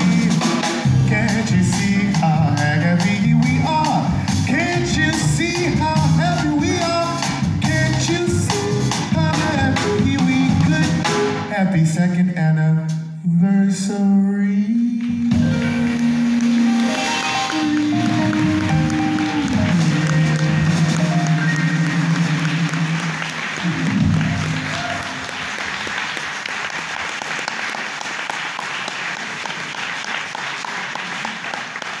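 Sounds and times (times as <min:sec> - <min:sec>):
jazz quartet with male singer: 0:00.0 - 0:23.2
audience applause: 0:15.8 - 0:32.0.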